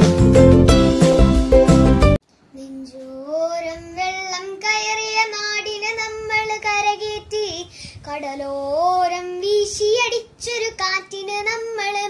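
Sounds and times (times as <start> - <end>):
strummed intro music: 0.0 - 2.2
girl singing unaccompanied: 2.5 - 12.0.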